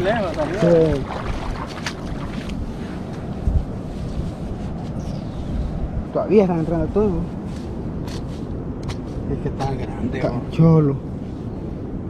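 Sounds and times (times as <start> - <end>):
ocean surf: 0.0 - 4.8
wind rumbling on microphone: 0.0 - 12.0.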